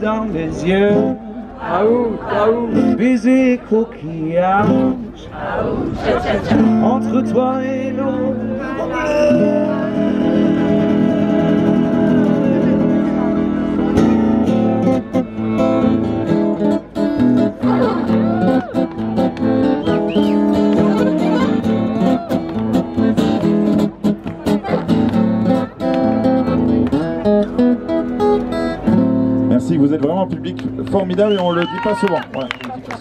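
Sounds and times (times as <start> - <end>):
acoustic guitar strummed: 6.5 - 30.6.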